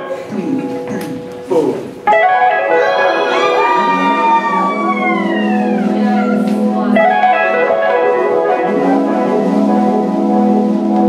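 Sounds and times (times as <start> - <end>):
live rock band playing: 2.0 - 11.0.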